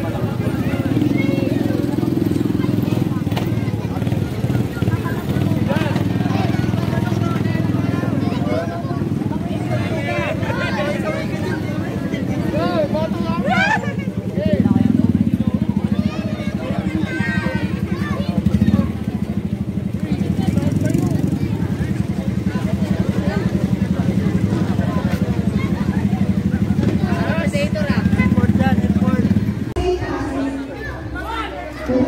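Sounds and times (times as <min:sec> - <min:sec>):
motorcycle engine running: 0:00.0 - 0:31.2
people calling and chattering: 0:00.0 - 0:32.0.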